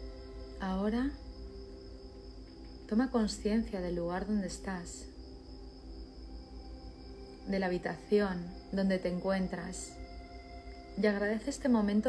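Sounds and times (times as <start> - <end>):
ambient meditation music: 0.0 - 12.0
crickets chirring: 0.0 - 12.0
woman speaking: 0.6 - 1.2, 2.9 - 5.1, 7.5 - 10.0, 11.0 - 12.0.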